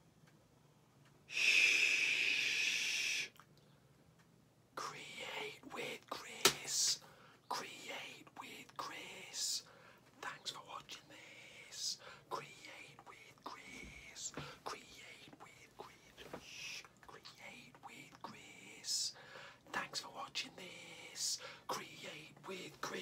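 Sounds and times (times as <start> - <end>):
man whispering: 1.3 - 3.3, 4.8 - 23.0.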